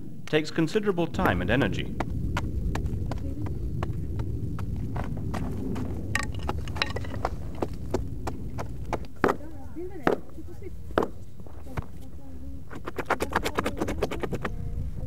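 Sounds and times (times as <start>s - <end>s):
low rumble: 0.0s - 12.9s, 14.3s - 15.0s.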